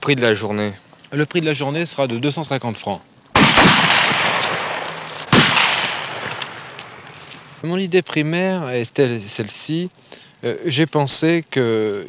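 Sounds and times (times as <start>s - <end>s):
shotgun shots: 3.4s - 7.4s.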